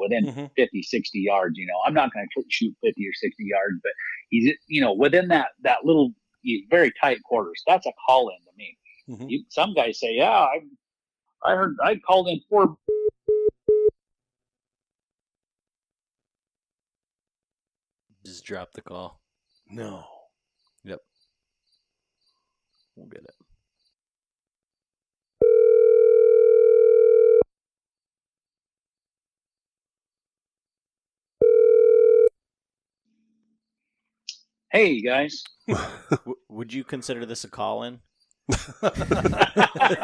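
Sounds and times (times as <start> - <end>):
phone call-dropped beeps: 12.9 - 13.9, 25.4 - 27.5
telephone ringback tone: 25.4 - 27.5, 31.4 - 32.3.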